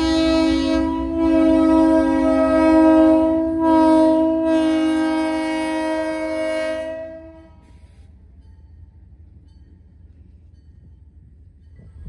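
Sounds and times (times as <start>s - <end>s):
locomotive air horn blast: 0.0s - 8.0s.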